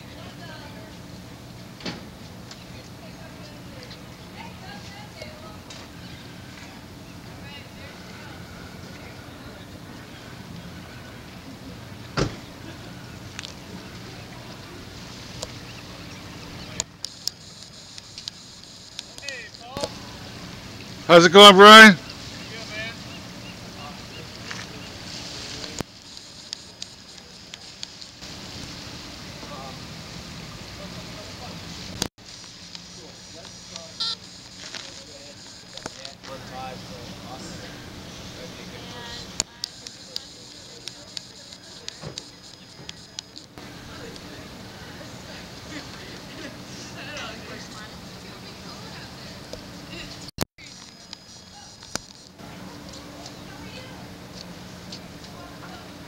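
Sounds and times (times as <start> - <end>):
boat engine humming: 0.0 - 56.0.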